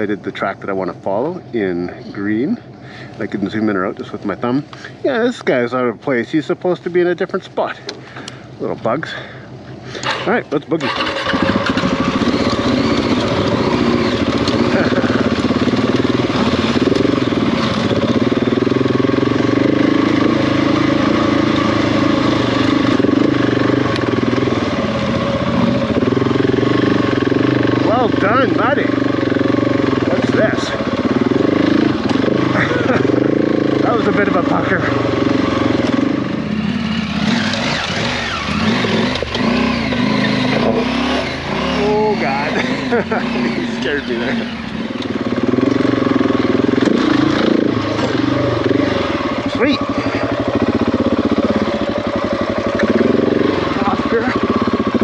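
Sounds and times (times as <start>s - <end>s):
motorcycle engine at low revs: 6.8s - 55.0s.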